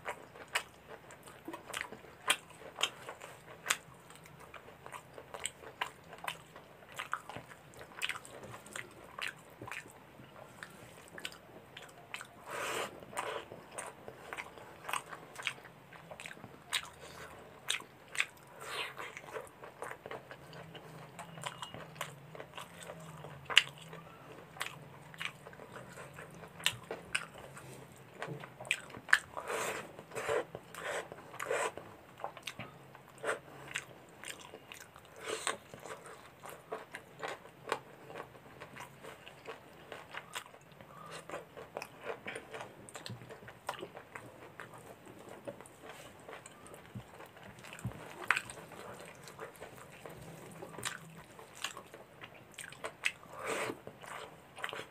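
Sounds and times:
person chewing with mouth clicks: 0:00.0 - 0:54.9.

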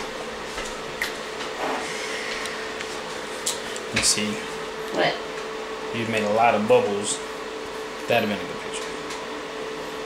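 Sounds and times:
faint steady whine: 0:00.0 - 0:10.0
steady mechanical hum and hiss: 0:00.0 - 0:10.0.

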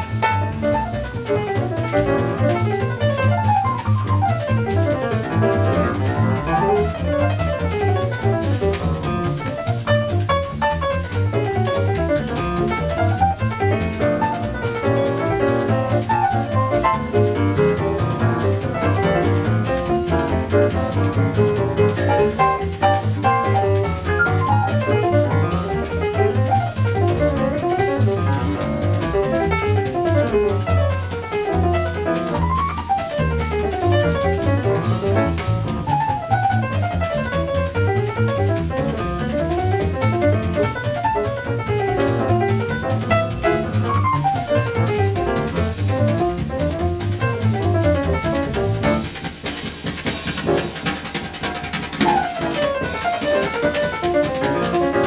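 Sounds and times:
drum kit: 0:00.0 - 0:55.0
piano fast runs: 0:00.0 - 0:55.0
plucked double bass: 0:00.0 - 0:55.0.

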